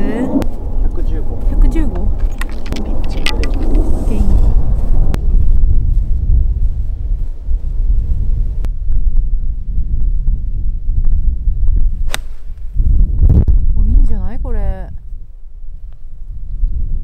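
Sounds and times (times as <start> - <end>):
wind rumble on microphone: 0.0 - 17.0
golf club striking ball: 12.0 - 12.5.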